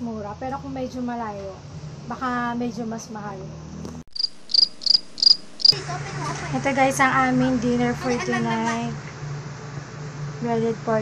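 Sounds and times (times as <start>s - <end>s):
cricket chirping: 4.1s - 5.8s.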